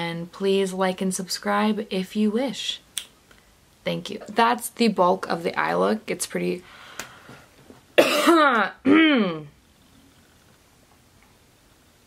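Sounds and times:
woman coughing: 8.0s - 9.5s.

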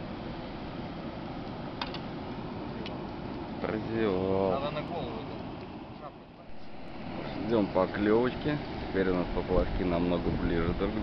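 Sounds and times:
wind rumble on microphone: 6.5s - 11.0s.

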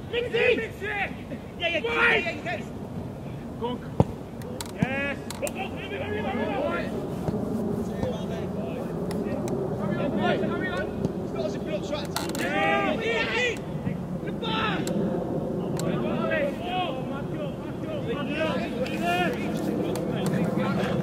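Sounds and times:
steady low background noise: 0.0s - 21.0s
voices shouting and calling: 0.0s - 21.0s.

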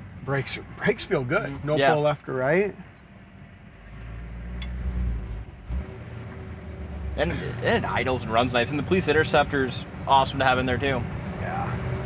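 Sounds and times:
car engine rumbling: 0.0s - 12.0s.

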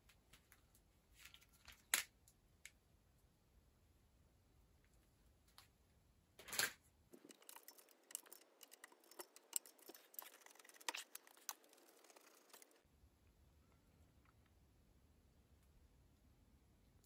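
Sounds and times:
hands rubbing bicycle parts: 7.2s - 12.8s.

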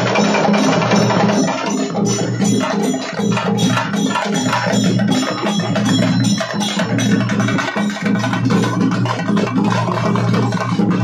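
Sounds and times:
barrel drums playing fast rhythm: 0.0s - 11.0s.

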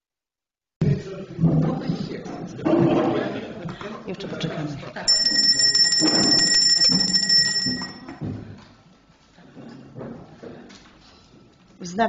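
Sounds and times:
bell ringing in a high trill: 5.1s - 8.2s.

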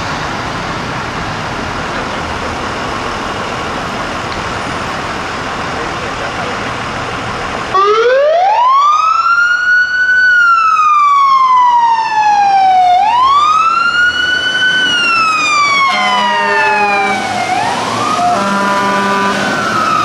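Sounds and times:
truck engine idling: 0.0s - 7.8s
fire truck siren wailing: 0.0s - 20.0s
street traffic: 0.0s - 20.0s.

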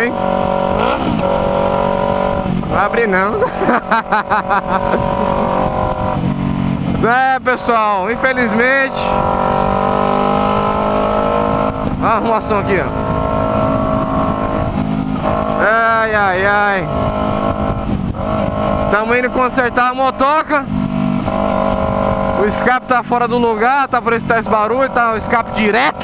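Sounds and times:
loud motorcycle engine: 0.0s - 26.0s.

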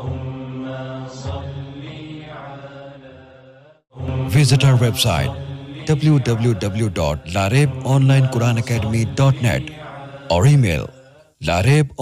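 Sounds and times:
man chanting: 4.2s - 12.0s.

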